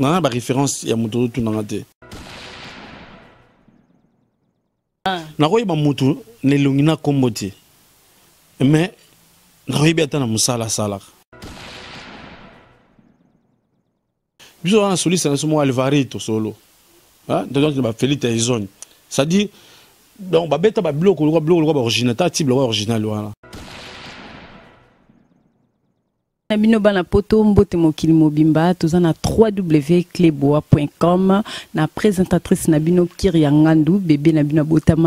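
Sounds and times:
man talking: 0.0 - 1.9, 5.1 - 7.6, 8.6 - 9.0, 9.7 - 11.2, 14.5 - 16.6, 17.3 - 19.5, 20.2 - 23.4
noisy hit or whoosh: 2.1 - 3.7, 11.4 - 12.8, 23.5 - 25.0
transition sound effect hit: 23.5 - 25.1.

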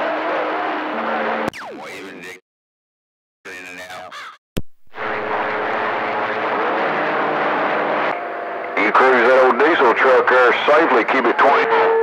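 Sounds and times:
radio speech: 1.7 - 2.4, 3.5 - 4.3, 8.8 - 12.0
radio static hiss: 4.9 - 7.0, 8.8 - 11.9.

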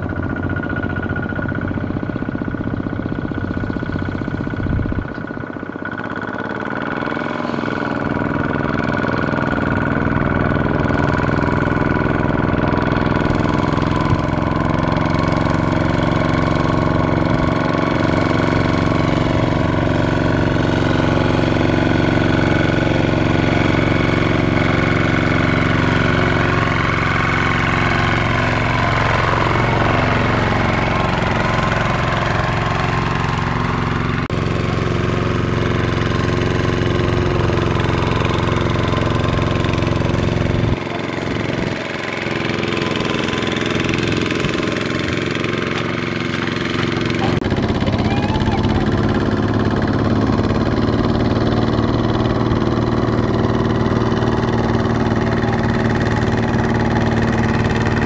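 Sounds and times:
diesel tractor engine running: 0.0 - 58.0.

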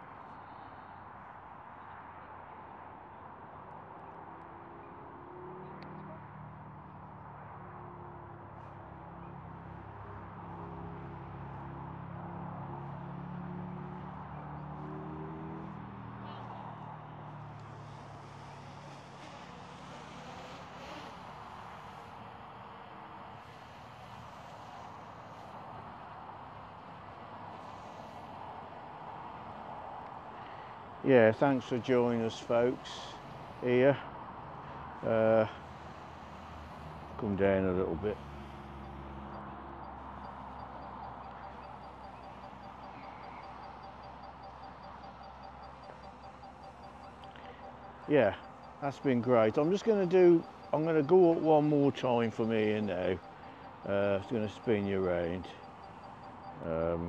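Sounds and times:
road traffic noise: 0.0 - 57.0
low engine hum: 8.1 - 57.0.

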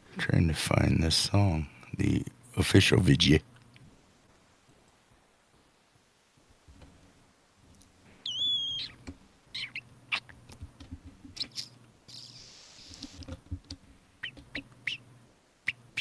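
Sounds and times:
high wavering chirp: 8.2 - 10.2, 11.4 - 13.0.

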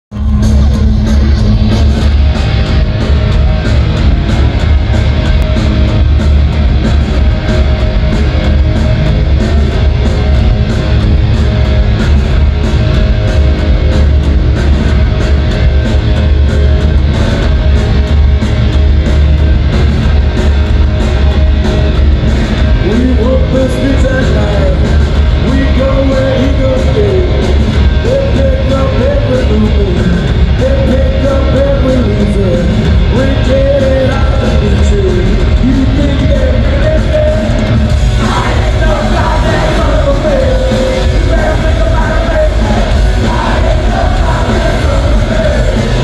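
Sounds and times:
bass guitar: 0.0 - 46.0
distorted electric guitars: 0.1 - 46.0
driving drumbeat: 0.1 - 46.0
punk rock band playing: 0.1 - 46.0.

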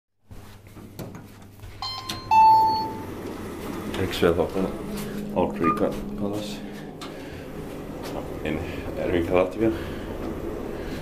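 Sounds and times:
low steady hum: 0.4 - 11.0
elevator two-tone chime: 1.8 - 3.2, 5.4 - 6.3.

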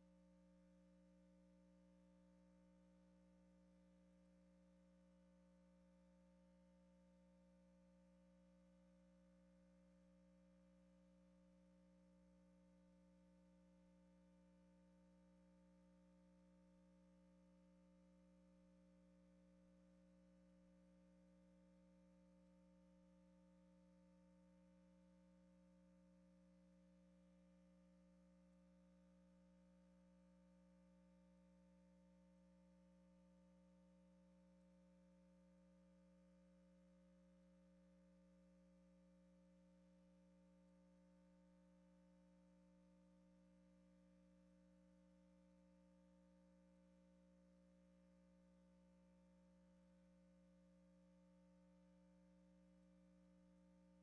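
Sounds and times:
faint steady hum: 0.0 - 54.0.

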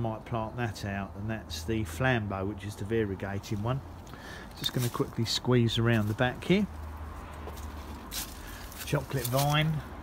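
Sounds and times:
rustle of garden plants: 3.4 - 10.0.

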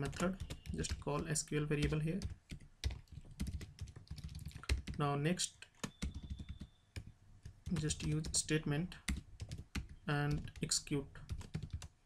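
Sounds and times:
typing on computer keyboard: 0.0 - 1.0, 1.8 - 5.0, 5.7 - 8.4, 9.0 - 10.7, 11.3 - 11.9.

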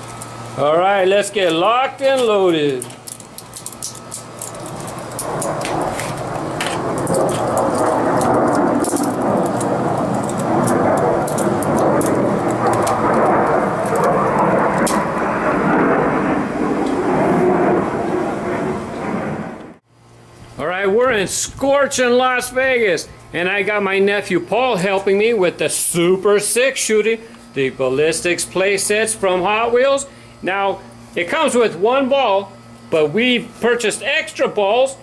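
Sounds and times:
steady rushing noise: 4.4 - 19.8.

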